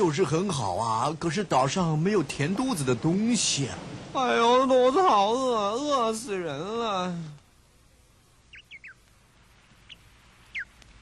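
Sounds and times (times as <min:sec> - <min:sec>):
faint steady hiss: 0:00.0 - 0:11.0
short bird chirps: 0:08.5 - 0:09.0, 0:09.9 - 0:10.8.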